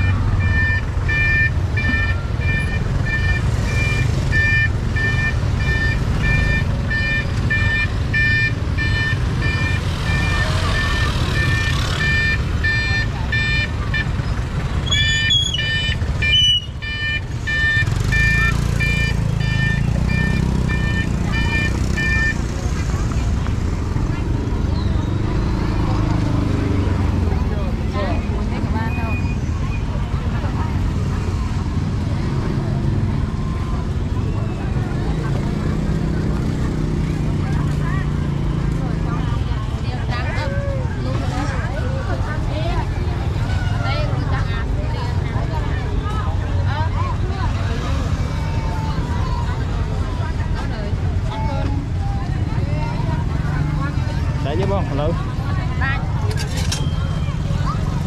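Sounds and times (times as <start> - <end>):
motorbike engines running: 0.0 - 58.0
street traffic: 0.0 - 58.0.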